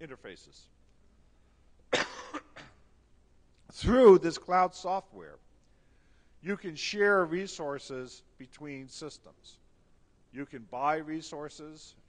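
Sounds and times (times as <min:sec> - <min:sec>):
man coughing: 0:01.9 - 0:02.8.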